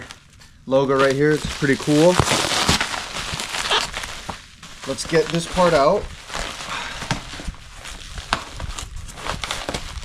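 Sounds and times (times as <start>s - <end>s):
bubble wrap crinkling: 0.0s - 10.0s.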